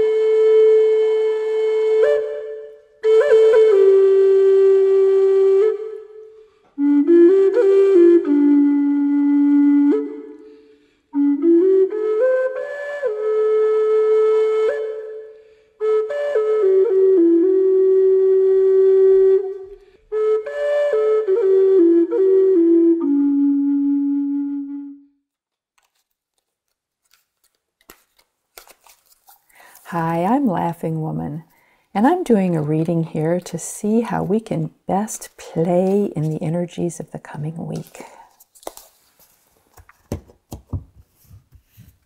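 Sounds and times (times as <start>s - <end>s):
flute holding long note: 0.0s - 25.2s.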